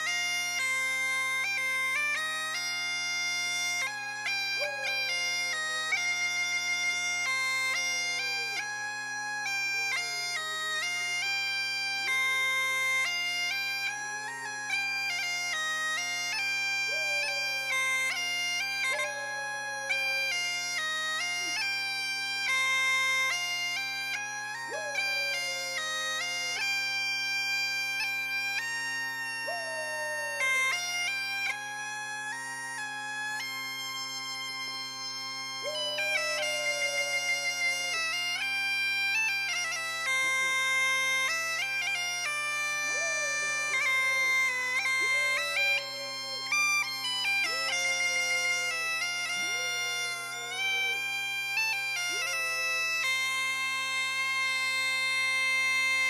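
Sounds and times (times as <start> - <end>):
bagpipes playing a tune: 0.0 - 56.0
person howling: 29.5 - 30.6, 42.9 - 44.4, 45.0 - 46.5, 47.4 - 48.8, 49.4 - 51.0.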